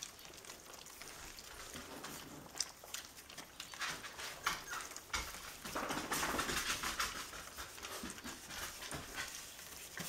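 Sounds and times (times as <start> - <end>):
puppies lapping and chewing: 0.0 - 10.0.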